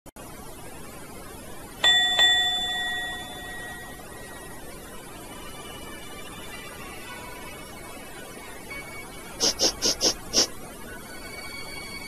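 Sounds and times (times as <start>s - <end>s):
elevator chime dings: 1.8s - 4.7s.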